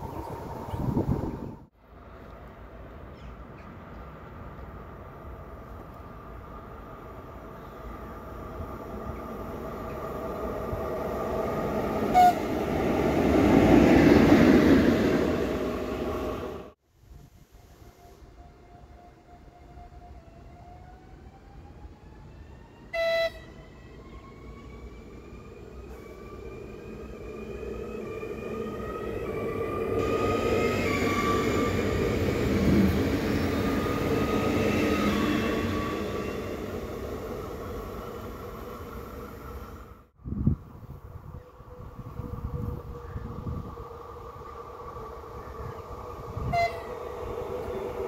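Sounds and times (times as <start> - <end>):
train horn blast: 12.1 - 12.6, 22.9 - 23.6, 46.4 - 47.1.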